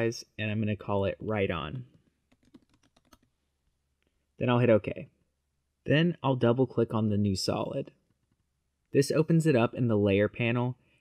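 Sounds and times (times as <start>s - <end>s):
typing on computer keyboard: 2.3s - 3.3s.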